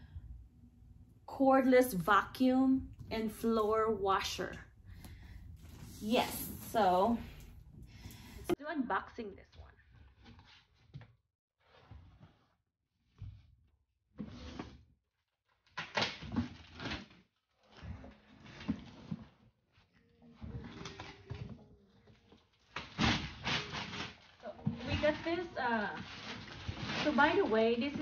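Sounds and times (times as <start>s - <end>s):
cardboard scraping and rustling: 20.3s - 28.0s.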